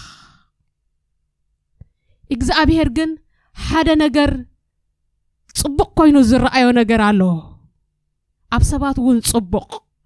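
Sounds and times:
woman breathing out into microphone: 0.0 - 0.5.

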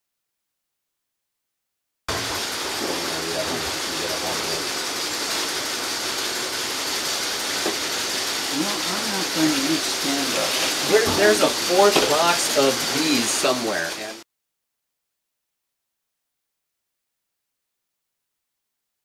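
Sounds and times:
steady hiss: 2.1 - 14.2.

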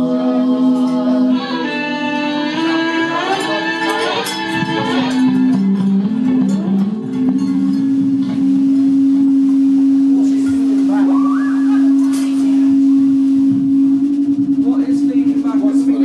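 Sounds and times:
long sustained instrument note: 0.0 - 16.0.

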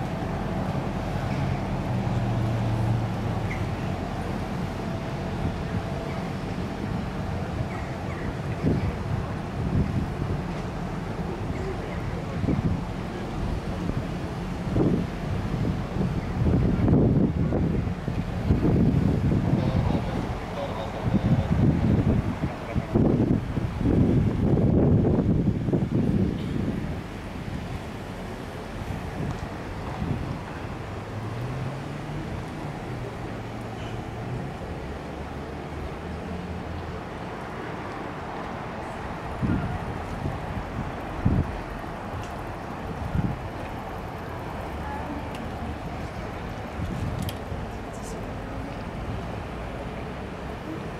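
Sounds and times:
wind buffeting microphone: 0.0 - 36.0, 36.7 - 50.9.

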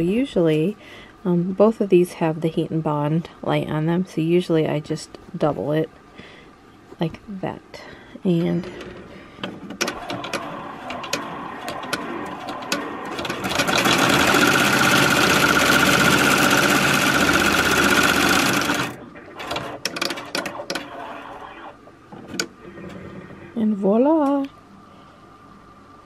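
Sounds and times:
embroidery machine clicking: 9.7 - 21.2
embroidery machine stitching whine: 9.8 - 23.5.

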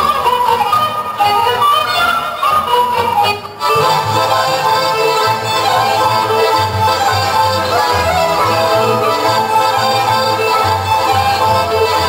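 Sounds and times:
instrumental accompaniment: 0.0 - 12.0
children singing folk song: 2.6 - 12.0.

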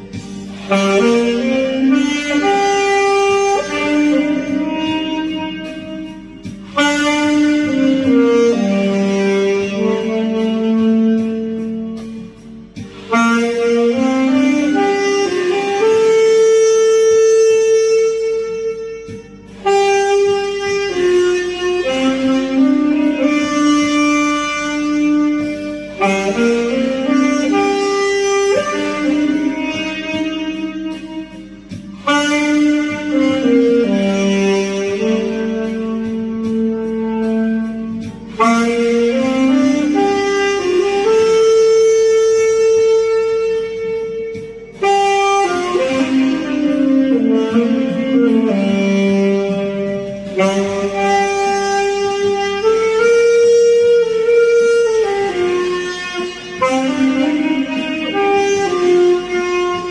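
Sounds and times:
saxophone long note: 0.0 - 59.9.

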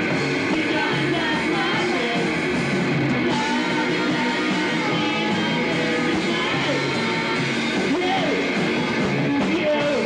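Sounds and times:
electric guitar: 0.0 - 10.0
person singing: 0.4 - 2.6, 3.2 - 10.0.

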